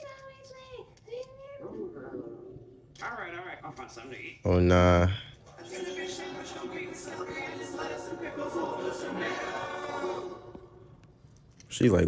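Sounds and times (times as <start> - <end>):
choir-like sung chord: 5.6 - 11.0.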